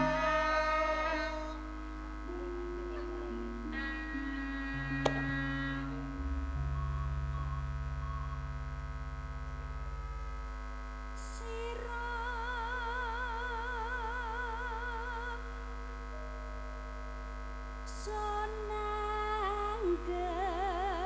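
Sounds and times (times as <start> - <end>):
held keyboard notes: 0.0 - 11.7
low bass line: 0.0 - 11.9.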